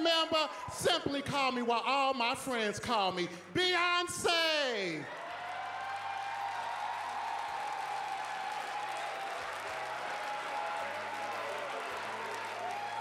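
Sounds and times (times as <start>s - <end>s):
audience applauding: 5.0s - 13.0s.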